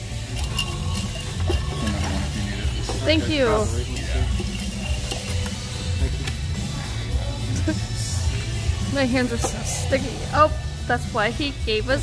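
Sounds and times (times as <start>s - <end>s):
background music: 0.0s - 12.0s
distant chatter: 0.1s - 11.8s.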